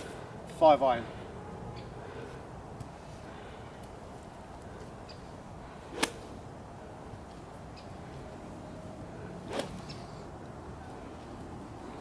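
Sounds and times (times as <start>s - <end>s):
low outdoor background noise: 0.0s - 12.0s.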